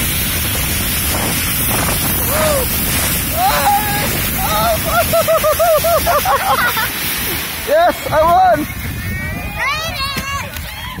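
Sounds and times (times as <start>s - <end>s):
steady low rumble: 0.0s - 10.9s.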